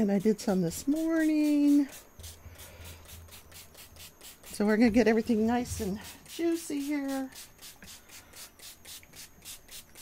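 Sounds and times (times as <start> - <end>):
spray bottle spritzing water: 6.2 - 10.0.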